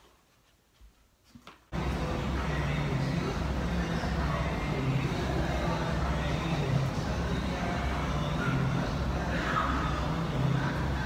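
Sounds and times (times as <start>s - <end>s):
constant low hum: 1.7s - 11.0s.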